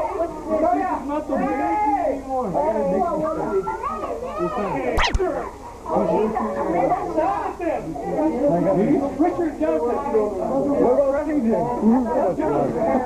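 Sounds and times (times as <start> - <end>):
quick rising squeak: 5.0 - 5.2
sharp clicks: 5.0 - 5.2.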